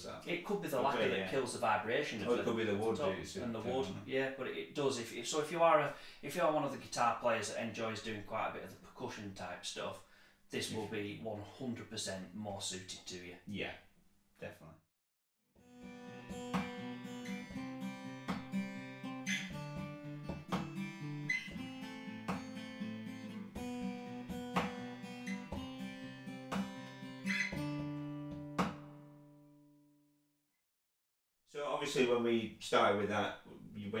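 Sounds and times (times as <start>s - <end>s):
acoustic guitars strumming chords: 15.8s - 29.3s.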